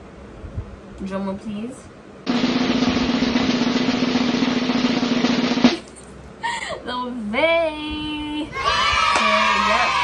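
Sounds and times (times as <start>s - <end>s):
sharp snare hit: 2.3s - 5.8s
snare drum roll: 2.3s - 5.8s.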